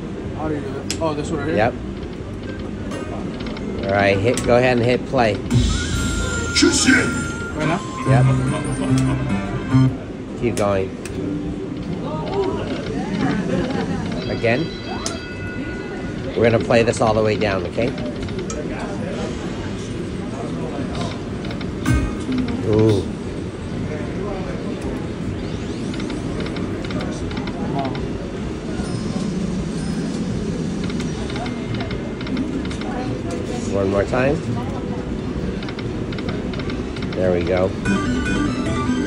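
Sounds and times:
casino din of voices and machines: 0:00.0 - 0:39.0
rising sweep: 0:05.5 - 0:10.1
slot machine electronic sounds: 0:05.5 - 0:10.4, 0:13.8 - 0:16.9, 0:21.8 - 0:23.1, 0:25.1 - 0:27.3, 0:37.7 - 0:39.0.

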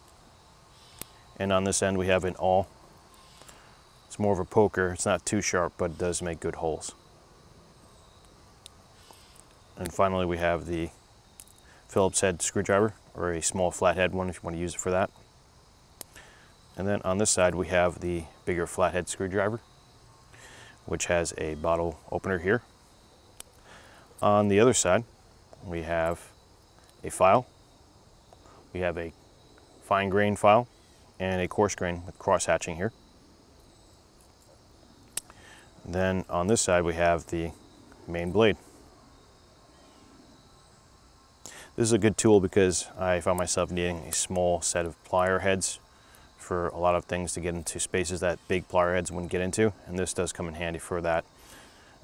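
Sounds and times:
faint steady high tone: 0:00.0 - 0:15.3, 0:16.3 - 0:23.2, 0:35.4 - 0:41.0
insect trill: 0:00.0 - 0:52.0.

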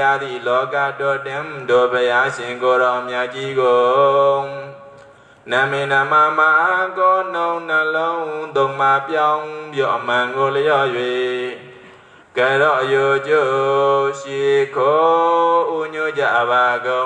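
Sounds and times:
monk chanting through a microphone: 0:00.0 - 0:17.0.

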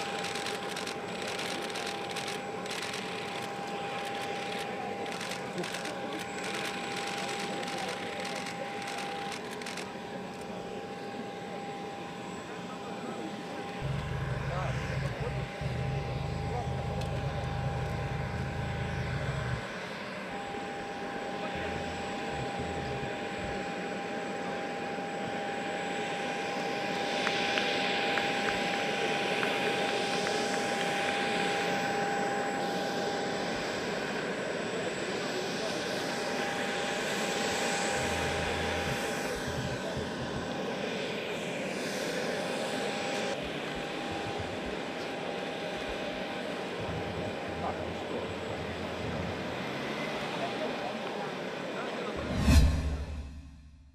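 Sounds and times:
jet engine whine: 0:00.0 - 0:53.9
outdoor noise: 0:00.0 - 0:53.9
low rumble: 0:13.8 - 0:19.6, 0:52.2 - 0:53.9.

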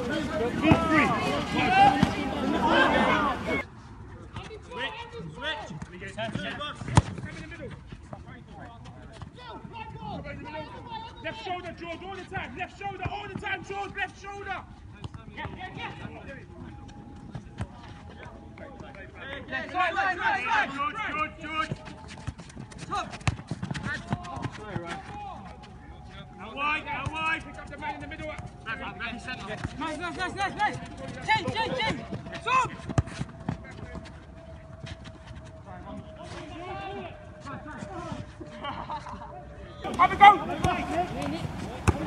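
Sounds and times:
footballers shouting: 0:00.0 - 0:03.6, 0:26.4 - 0:34.0, 0:39.5 - 0:42.0
players calling and shouting: 0:00.0 - 0:42.0
football being kicked: 0:39.9 - 0:42.0.

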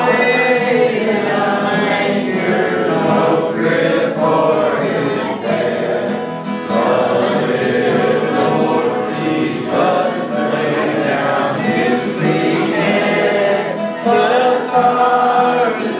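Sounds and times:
acoustic guitars strummed: 0:00.0 - 0:15.9
man singing gospel song: 0:00.0 - 0:15.9
voices singing along: 0:00.0 - 0:15.9.

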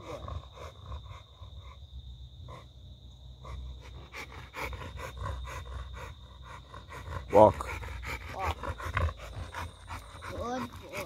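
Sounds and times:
dog panting rapidly: 0:00.0 - 0:01.8, 0:02.4 - 0:02.7, 0:03.4 - 0:11.0.

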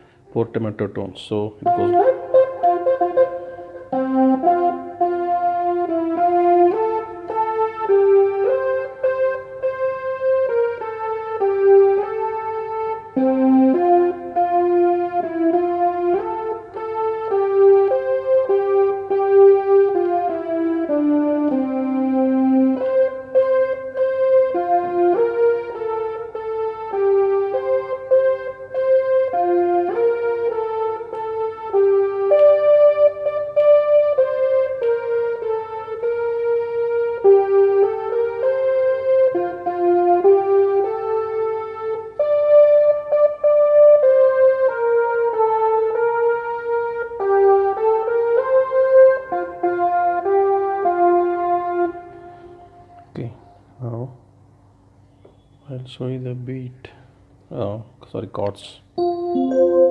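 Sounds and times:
keyboard playing slow hymn melody: 0:00.0 - 0:00.7, 0:01.3 - 0:54.0, 0:59.0 - 0:59.9.

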